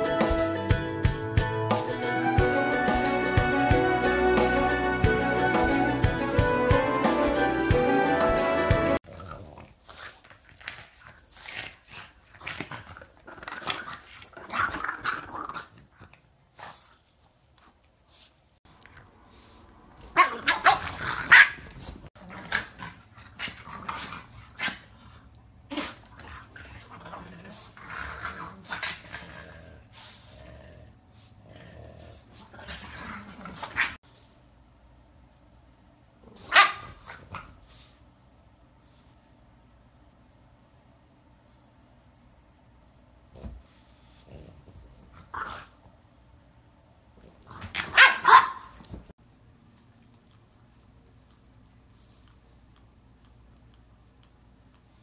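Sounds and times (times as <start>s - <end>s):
dogs grunting and growling: 9.0s - 10.0s, 19.8s - 34.0s, 43.3s - 45.8s
dog barking: 36.4s - 36.9s, 47.9s - 48.8s.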